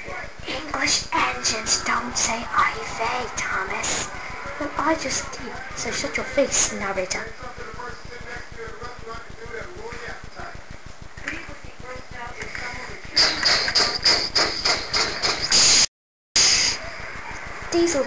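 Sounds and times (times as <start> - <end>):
high whine: 0.0 - 14.8
toy train motor clicking rattle: 12.4 - 15.8.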